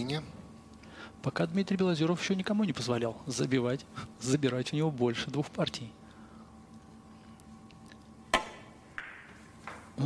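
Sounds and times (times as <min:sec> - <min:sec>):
cue tip striking ball: 0:08.3 - 0:09.9.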